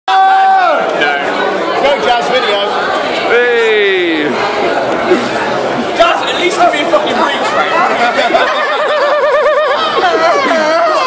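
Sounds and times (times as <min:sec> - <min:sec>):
people chattering: 0:00.1 - 0:11.0.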